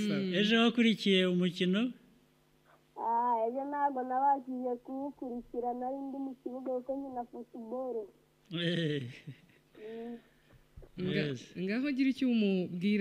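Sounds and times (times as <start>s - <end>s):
faint steady hum: 0.0s - 13.0s
high-pitched voice singing: 3.0s - 8.2s.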